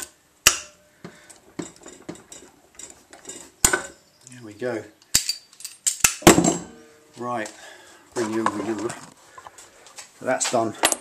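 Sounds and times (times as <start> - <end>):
metal tools clinking and knocking: 1.3 - 4.1, 5.0 - 6.8.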